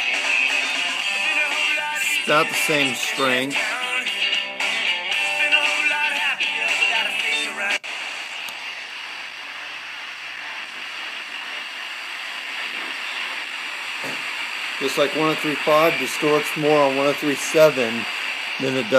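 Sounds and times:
radio static hiss: 0:00.0 - 0:04.8, 0:05.4 - 0:18.9
radio music with singing: 0:00.0 - 0:18.9
radio tuning click: 0:02.0 - 0:03.7, 0:07.8 - 0:18.9.

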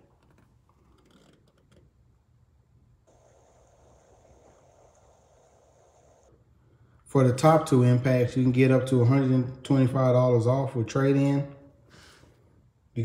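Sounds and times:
faint hiss: 0:03.1 - 0:07.0.

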